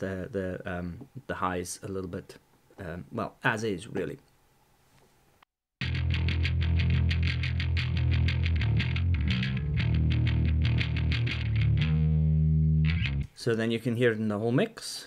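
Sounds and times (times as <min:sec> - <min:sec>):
distorted electric bass line: 0:05.8 - 0:13.3.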